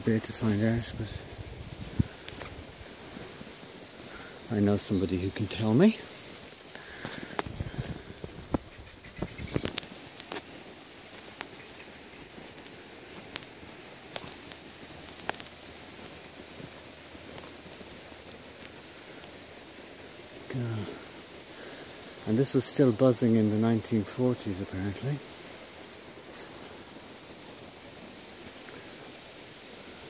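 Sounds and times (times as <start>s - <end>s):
faint steady hiss: 0.0s - 30.0s
footsteps rustling through grass: 0.0s - 30.0s.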